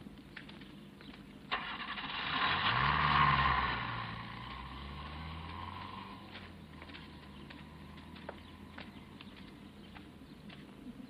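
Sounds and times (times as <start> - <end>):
car engine starting and revving: 1.5 - 9.9.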